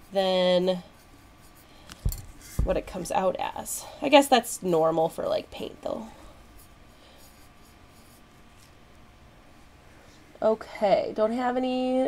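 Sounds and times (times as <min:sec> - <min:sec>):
paintbrush scratching: 0:06.5 - 0:08.7.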